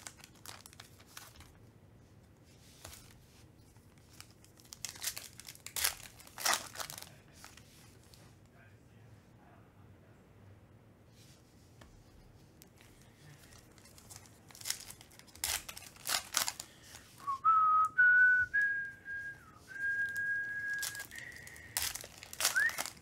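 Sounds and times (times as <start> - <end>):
foil wrappers crinkling and tearing: 0.0 - 1.6, 3.8 - 8.1, 12.7 - 17.3, 19.8 - 23.0
person whistling: 17.2 - 21.8, 22.4 - 23.0.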